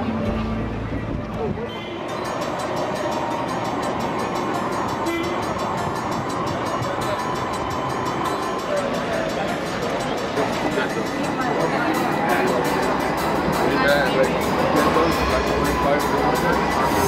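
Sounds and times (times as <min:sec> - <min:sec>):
electric tram humming: 0:00.0 - 0:17.0
tram rattling on rails: 0:00.0 - 0:17.0.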